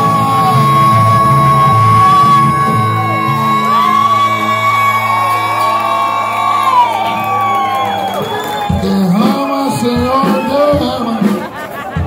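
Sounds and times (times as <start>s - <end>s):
audience whooping and cheering: 0.0s - 12.0s
live rock band playing: 0.0s - 12.0s.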